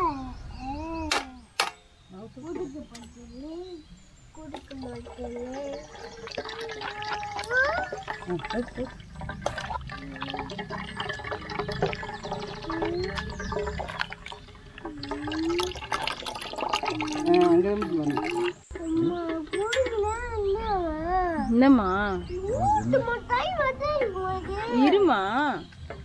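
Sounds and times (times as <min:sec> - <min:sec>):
clicks and knocks on metal: 0:01.1 - 0:01.9
juice trickling into pot: 0:04.2 - 0:20.2
wet squishing of fruit pulp: 0:05.1 - 0:18.6.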